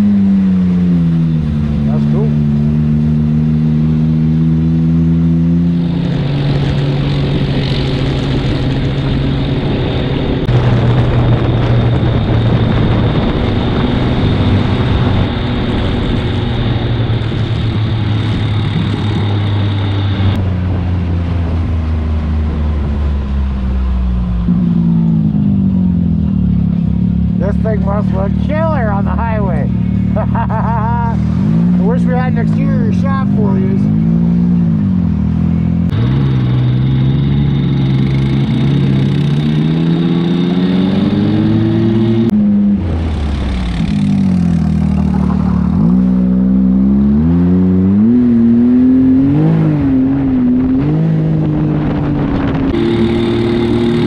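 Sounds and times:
vehicle engine running: 0.0s - 54.0s
person speaking: 27.4s - 33.9s.

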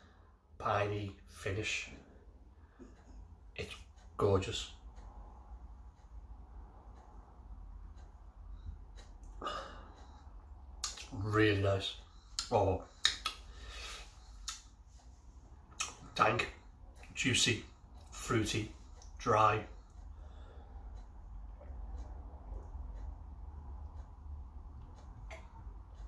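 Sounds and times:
low steady hum: 0.0s - 26.0s
man speaking a word: 0.6s - 2.0s, 3.6s - 4.8s, 11.0s - 12.9s, 16.1s - 19.7s.

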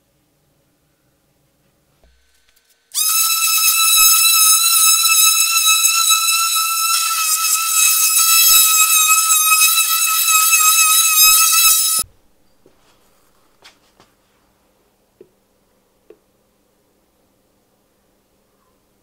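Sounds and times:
orbital sander high-pitched whine: 2.9s - 12.0s.

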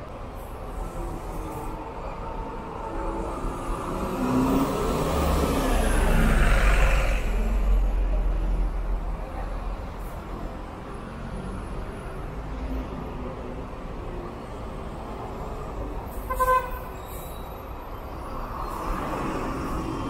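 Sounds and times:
diesel bus driving past: 0.0s - 20.0s
street traffic: 0.0s - 20.0s.

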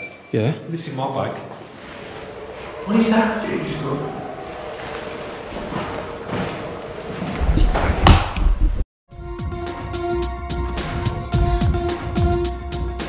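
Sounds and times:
loud thump: 7.5s - 8.8s.

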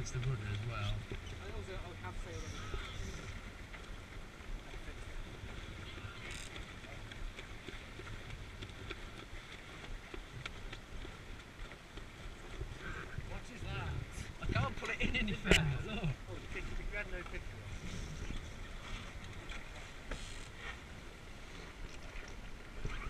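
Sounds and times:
water washing along hull: 0.0s - 23.0s
wind buffeting microphone: 12.0s - 19.7s.

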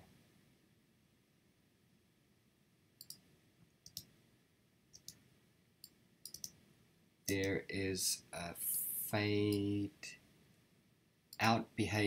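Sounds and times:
computer mouse clicks: 3.0s - 4.2s, 4.9s - 5.2s, 5.8s - 6.6s.

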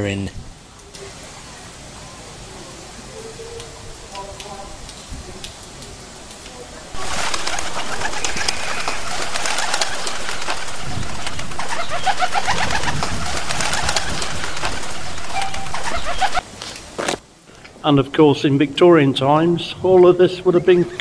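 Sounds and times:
birds calling: 6.9s - 16.4s
pigeons cooing: 7.0s - 16.4s.

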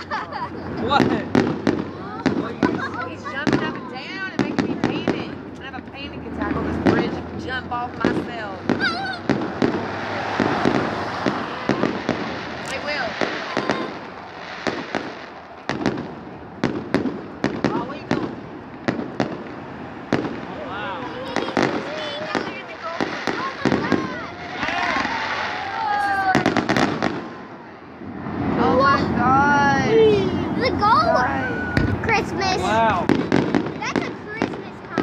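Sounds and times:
fireworks bangs and crackling: 0.0s - 35.0s.

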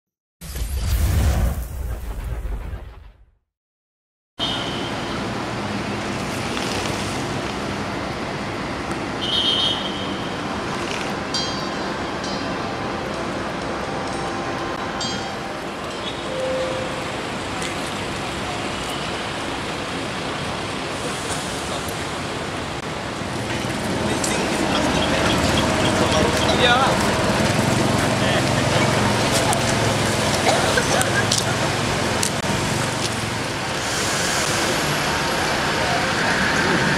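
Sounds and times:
roadside traffic hum: 4.4s - 36.9s.

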